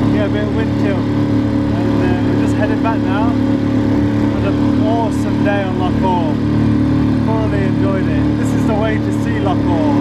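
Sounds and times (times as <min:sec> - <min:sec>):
person speaking: 0:00.0 - 0:03.6, 0:04.2 - 0:06.4, 0:07.2 - 0:10.0
outboard motor droning: 0:00.0 - 0:10.0
water wash: 0:00.0 - 0:10.0
wind: 0:00.0 - 0:10.0.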